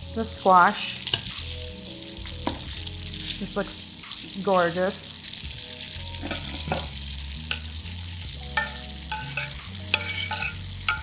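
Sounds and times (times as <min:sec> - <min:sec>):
utensils clinking on metal pan: 0:06.1 - 0:07.7, 0:08.5 - 0:11.0.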